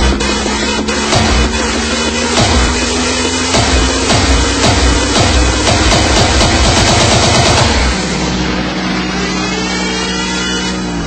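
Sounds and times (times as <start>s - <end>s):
buzzy synth chord: 0.0s - 11.0s
pounding electronic beat: 0.0s - 11.0s.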